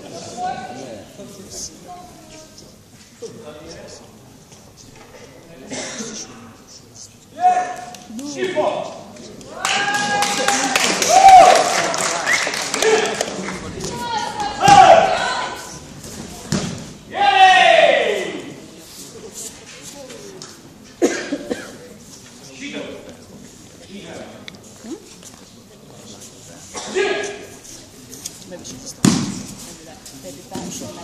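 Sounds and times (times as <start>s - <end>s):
thud: 16.4s - 16.9s, 29.0s - 29.6s
sharp thud with echo: 29.0s - 29.5s.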